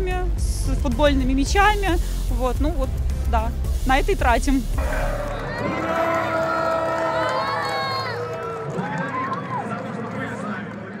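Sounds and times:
children shouting and cheering: 4.8s - 9.6s.

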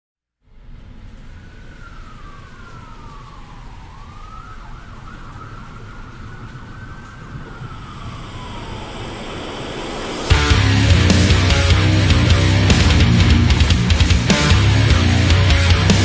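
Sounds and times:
low rumbling noise: 0.4s - 16.0s
siren-like wailing tone: 0.6s - 16.0s.

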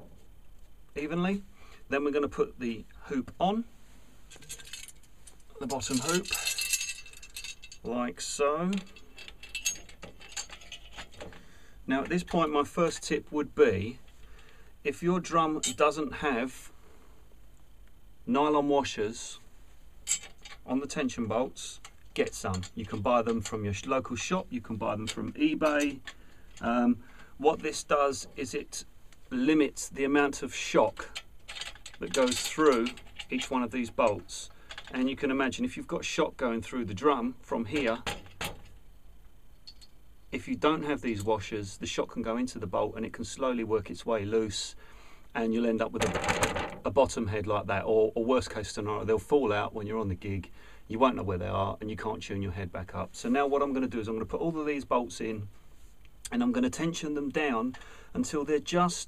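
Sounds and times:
metallic clinks and rattles: 4.3s - 7.9s, 8.7s - 11.4s, 20.0s - 20.7s, 31.0s - 35.0s, 39.5s - 40.0s.

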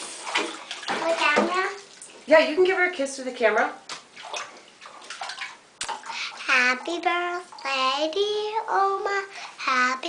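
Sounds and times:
bath water sloshing: 0.0s - 7.8s.

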